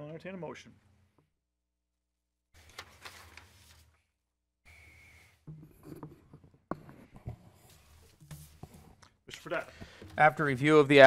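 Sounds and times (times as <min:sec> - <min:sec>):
papers rustling: 0:02.6 - 0:04.0.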